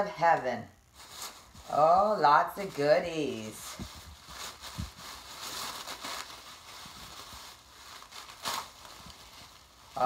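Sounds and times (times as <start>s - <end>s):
paper and plastic crinkling: 0.9s - 10.0s.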